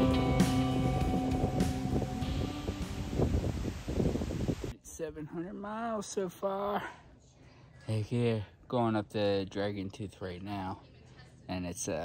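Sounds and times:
background music: 0:00.0 - 0:03.5
wind gusting across microphone: 0:00.0 - 0:04.8.

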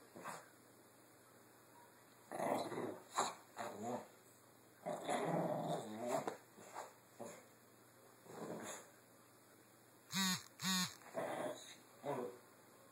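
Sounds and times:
small dog growling: 0:02.3 - 0:04.1, 0:04.8 - 0:06.3, 0:08.3 - 0:08.9, 0:11.0 - 0:12.4.

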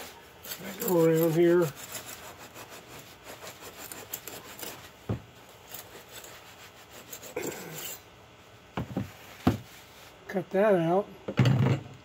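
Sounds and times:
knife sawing through rockwool: 0:00.0 - 0:08.0.

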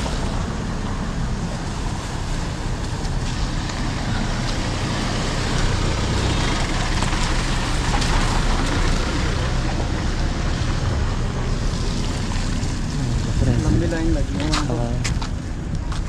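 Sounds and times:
wind rushing over microphone: 0:00.0 - 0:16.0.

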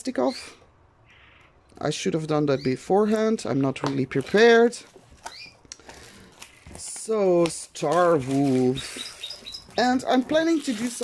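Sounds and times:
plastic crinkle: 0:04.0 - 0:11.0
plastic wrap rustling and scraping: 0:04.1 - 0:11.0.

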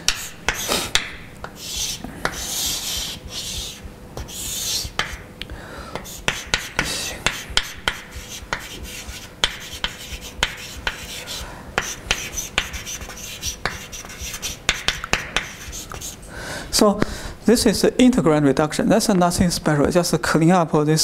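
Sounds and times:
chalk tapping on blackboard: 0:00.0 - 0:05.3, 0:06.0 - 0:16.2
chalk scratching on blackboard: 0:00.1 - 0:05.3, 0:06.0 - 0:16.2.

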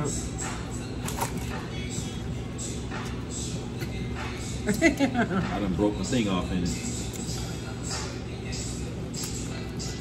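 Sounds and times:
background music: 0:00.0 - 0:10.0
restaurant room noise: 0:00.0 - 0:10.0.

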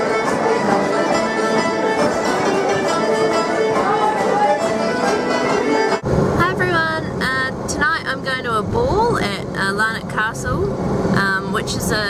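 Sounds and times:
car road and engine noise: 0:00.0 - 0:12.0
woman talking: 0:06.4 - 0:12.0.

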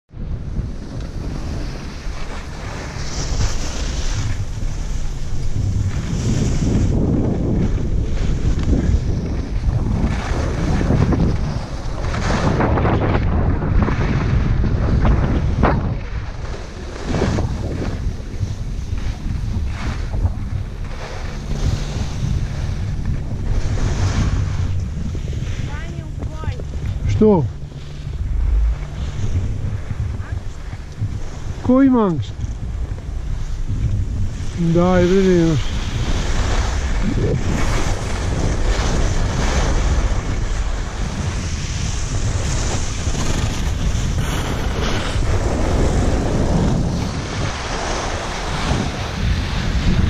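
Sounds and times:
wind buffeting microphone: 0:00.1 - 0:50.0
skis scraping over snow: 0:00.5 - 0:50.0.

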